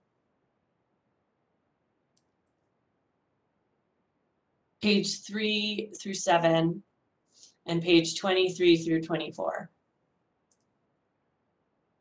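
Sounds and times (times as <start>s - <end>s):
faint short clicks: 10.5s - 10.8s.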